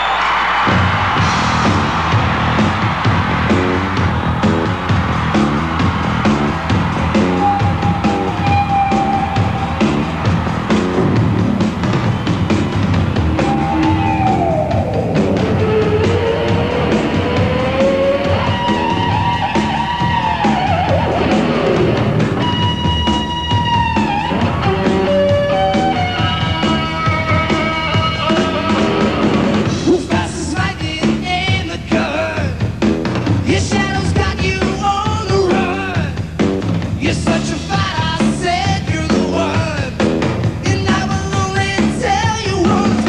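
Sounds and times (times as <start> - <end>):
pounding drums: 0.5 - 43.0
hard rock band playing live: 0.6 - 43.0
distorted electric guitars: 0.7 - 31.2.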